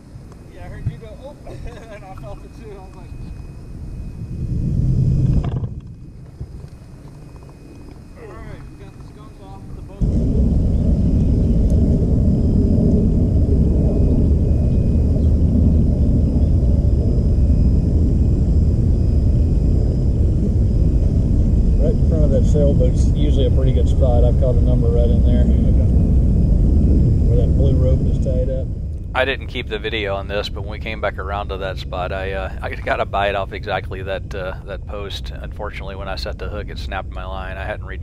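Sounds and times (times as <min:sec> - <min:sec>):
loud low rumble: 0:02.1 - 0:06.6, 0:08.2 - 0:38.0.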